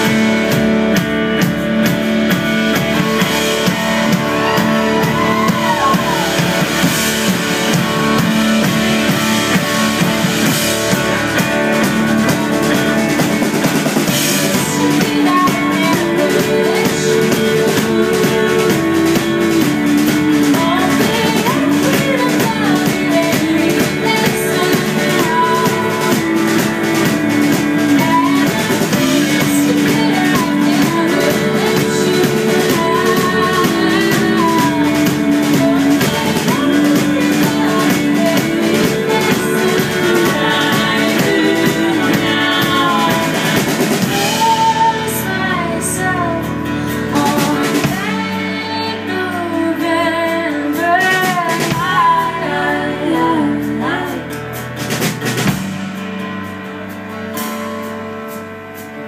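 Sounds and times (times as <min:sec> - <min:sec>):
drums: 0:00.0 - 0:59.0
electric and acoustic guitars: 0:00.0 - 0:59.0
voices holding long sung notes: 0:14.1 - 0:45.9.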